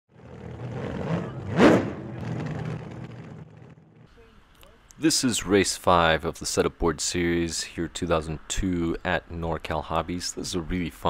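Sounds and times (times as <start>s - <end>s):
car engine revving: 0.1s - 4.0s.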